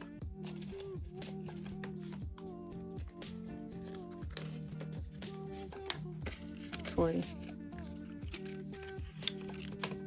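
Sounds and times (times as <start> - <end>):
mellow music with steady beat: 0.0 - 10.0.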